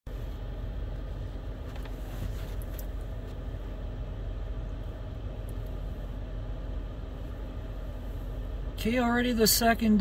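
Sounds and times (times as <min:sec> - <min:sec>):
car engine idling: 0:00.1 - 0:10.0.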